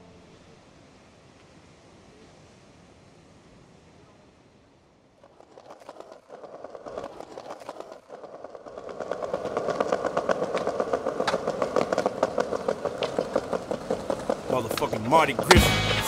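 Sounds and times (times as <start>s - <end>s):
skateboard wheels rolling on paving: 4.9s - 16.0s.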